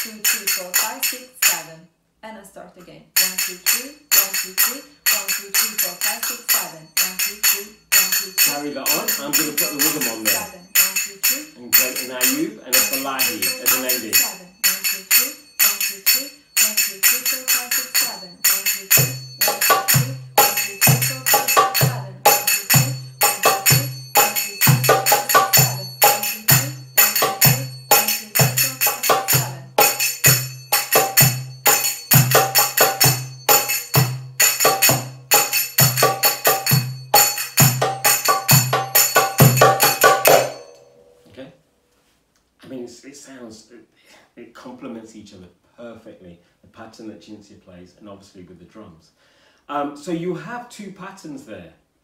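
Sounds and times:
finger cymbals ringing: 0.0 - 1.7, 3.2 - 41.3.

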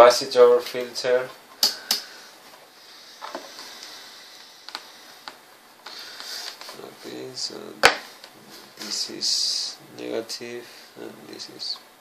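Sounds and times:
faint room hiss: 0.0 - 12.0.

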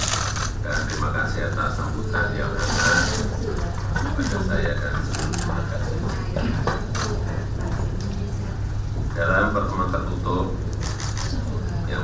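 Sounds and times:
low electrical hum: 0.0 - 12.0
man speaking into a microphone: 0.6 - 3.3.

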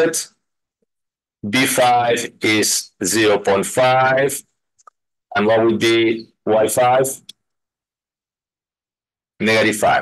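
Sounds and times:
man speaking: 0.0 - 0.4, 1.4 - 4.6, 5.3 - 7.4, 9.4 - 10.0.

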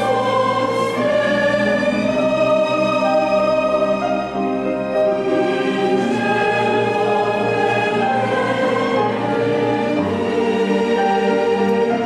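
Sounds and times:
choir singing held chords: 0.0 - 12.0
musical accompaniment: 0.0 - 12.0.

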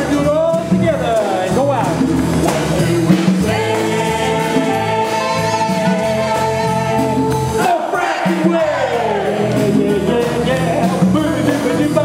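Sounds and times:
live band playing: 0.0 - 12.0
man singing: 2.3 - 12.0
saxophone: 2.4 - 10.7.

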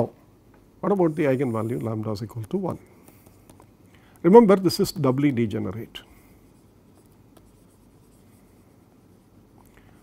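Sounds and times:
stylus scratching on pen tablet: 0.9 - 3.6, 6.5 - 9.4.

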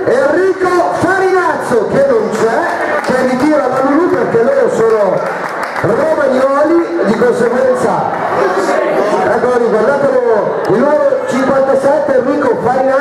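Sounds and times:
man talking: 0.0 - 13.0
people talking: 0.0 - 13.0.

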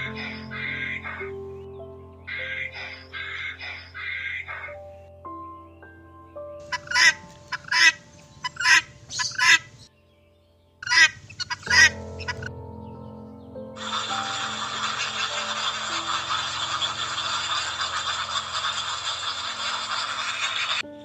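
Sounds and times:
guineafowl harsh calls: 0.0 - 1.2, 2.3 - 4.8, 6.6 - 9.8, 10.8 - 12.5, 13.8 - 20.8
faint steady background tone: 0.0 - 21.0
steady hissing noise: 13.8 - 21.0.

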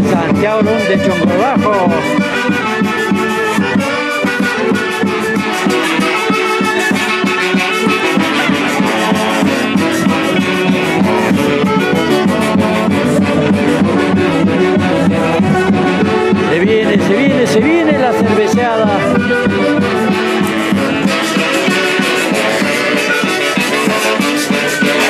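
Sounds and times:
brass band music: 0.0 - 25.0
steady drum beat: 0.0 - 25.0.

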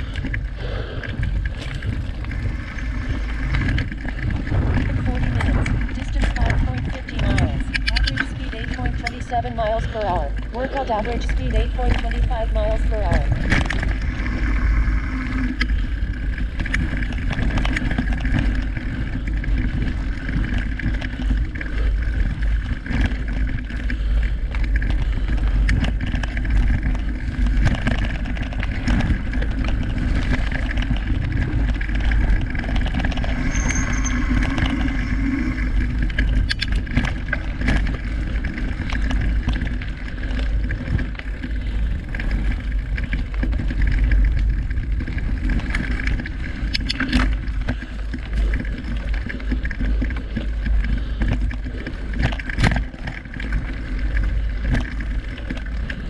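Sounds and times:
bike rattling over bumps: 0.0 - 56.0
bike tyres rumbling on dirt: 0.0 - 56.0
wind buffeting microphone: 0.0 - 56.0.

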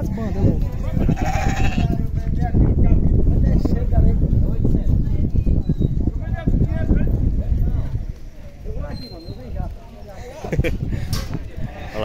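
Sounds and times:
background chatter: 0.0 - 12.0
goat bleating: 0.9 - 2.0.

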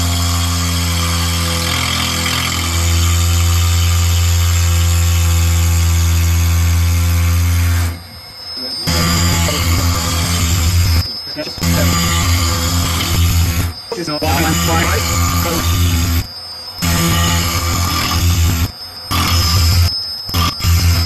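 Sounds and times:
end mill cutting plastic: 0.0 - 8.0, 8.7 - 21.0
mill spindle whine: 0.0 - 21.0.

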